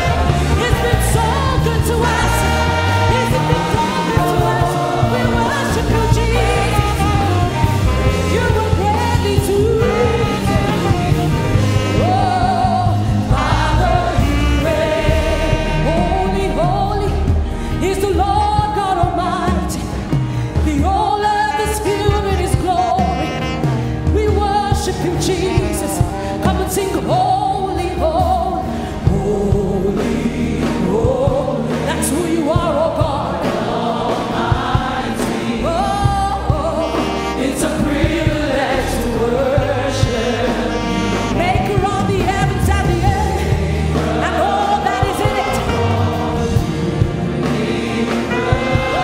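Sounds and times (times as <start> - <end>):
gospel singing with band: 0.0 - 49.0.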